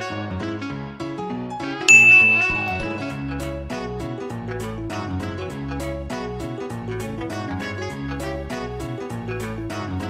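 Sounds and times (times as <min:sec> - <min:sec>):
background music: 0:00.0 - 0:10.0
loud bell-like ding: 0:01.9 - 0:03.7.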